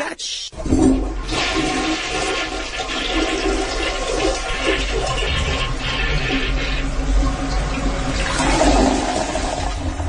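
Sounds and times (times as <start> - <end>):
toilet flushing: 0.5 - 10.0.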